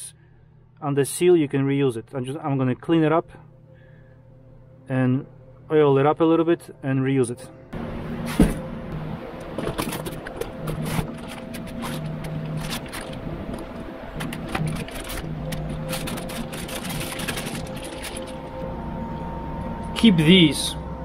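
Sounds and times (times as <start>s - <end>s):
plastic packaging rustling: 9.6s - 18.7s.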